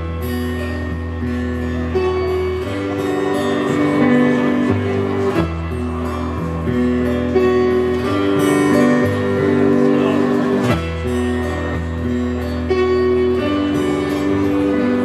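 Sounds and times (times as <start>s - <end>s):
strummed acoustic guitar: 0.0s - 15.0s.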